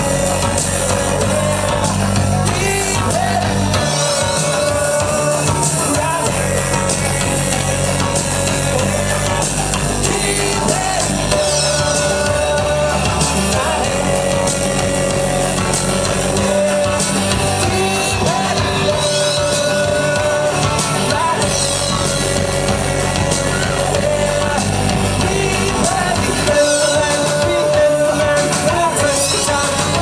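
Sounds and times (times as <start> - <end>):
electric guitar: 0.0 - 30.0
indie rock band playing live: 0.0 - 30.0
person singing: 0.0 - 30.0.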